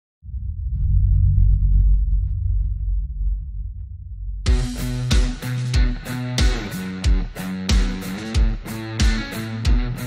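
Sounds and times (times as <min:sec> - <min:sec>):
deep low drone: 0:00.2 - 0:05.2.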